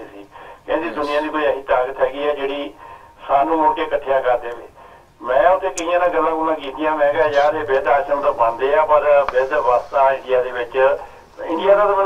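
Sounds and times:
person talking: 0.7s - 1.5s, 5.6s - 12.0s.

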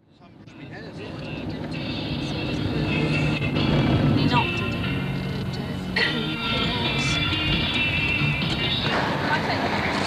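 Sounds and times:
car engine and road noise: 0.0s - 10.0s
music playing: 0.4s - 10.0s.

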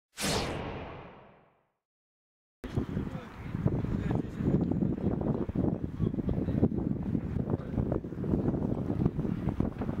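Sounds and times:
whoosh sound effect: 0.1s - 1.7s.

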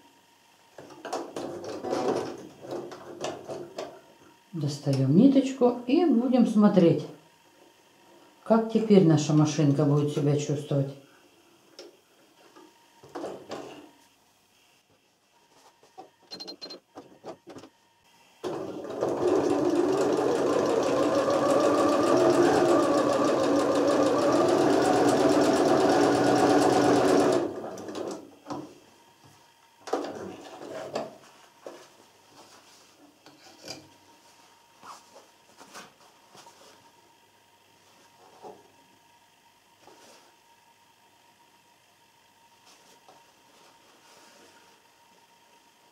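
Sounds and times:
sewing machine stitching: 18.4s - 28.2s.

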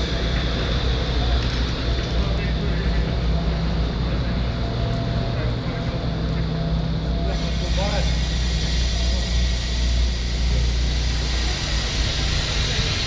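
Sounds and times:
faint voices: 0.0s - 13.0s
low engine rumble: 0.0s - 13.0s.

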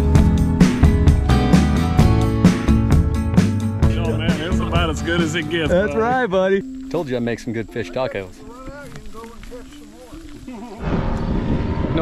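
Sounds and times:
loud low rumbling: 10.8s - 12.0s.

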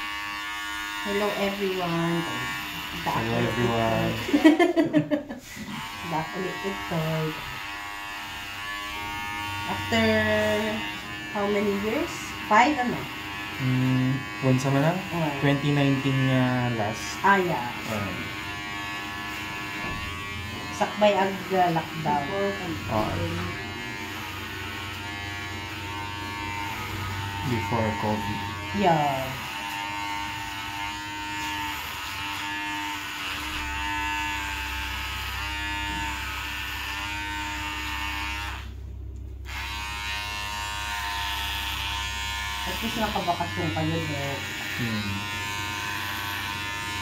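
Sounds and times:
electric hair clippers humming: 0.0s - 47.0s.

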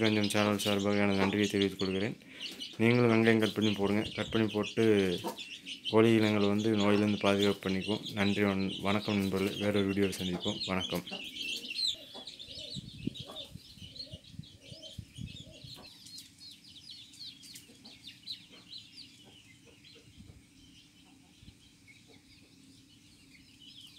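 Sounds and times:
hen clucking: 0.0s - 23.4s
chicks peeping: 0.0s - 23.9s.

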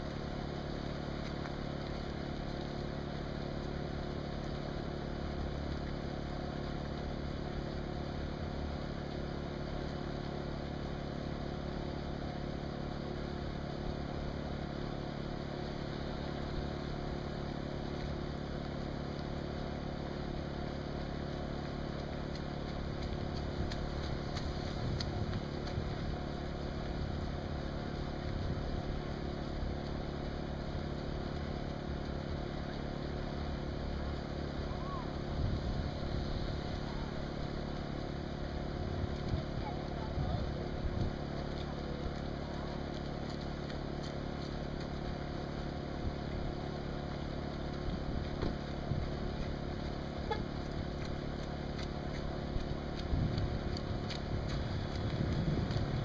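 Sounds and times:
engine idling: 0.0s - 56.0s.

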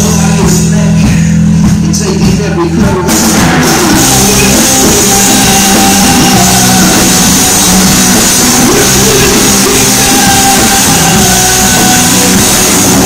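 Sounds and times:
live rock band playing: 0.0s - 13.0s.

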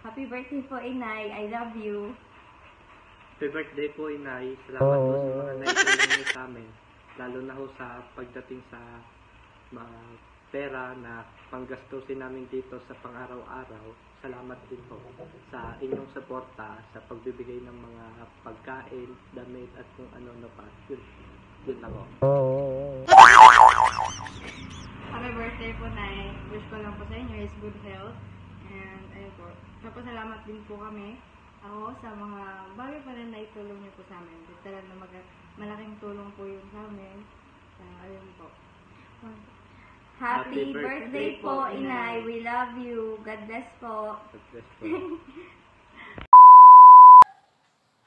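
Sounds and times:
low wobbling boing tone: 4.8s - 5.6s, 22.2s - 24.3s
loud electronic beep: 23.1s - 24.3s, 46.4s - 47.2s.

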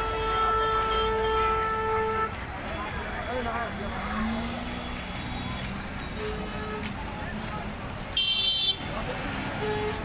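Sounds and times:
crowd talking: 0.0s - 10.0s
passing traffic: 0.0s - 10.0s.

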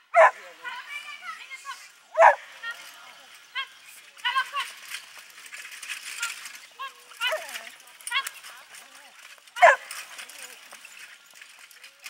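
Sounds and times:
harness clicking and jingling: 0.2s - 12.0s.

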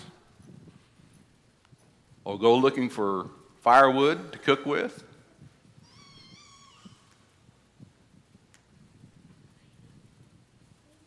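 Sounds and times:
faint high wavering cry: 5.8s - 7.2s.

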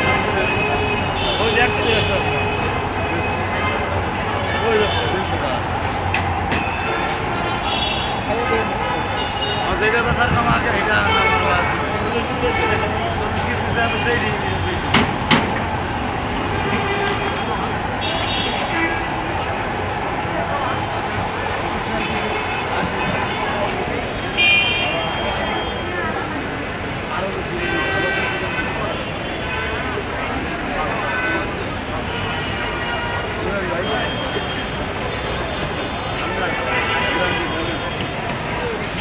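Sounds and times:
people talking: 0.0s - 15.7s, 16.3s - 39.0s
heavy vehicle traffic drone: 0.0s - 39.0s
people's voices: 0.0s - 39.0s.

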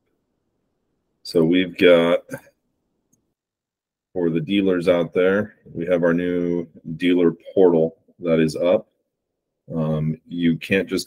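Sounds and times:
man's voice: 1.3s - 2.4s, 4.2s - 8.8s, 9.7s - 11.0s.

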